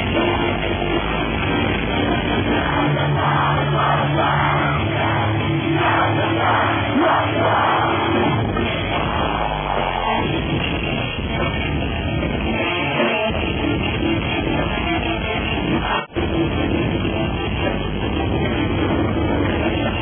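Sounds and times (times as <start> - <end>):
metal band playing live: 0.0 - 20.0.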